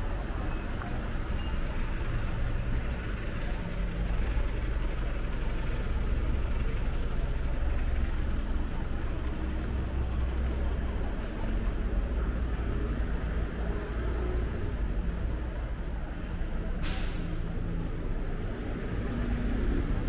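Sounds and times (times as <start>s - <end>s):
low street rumble: 0.0s - 20.0s.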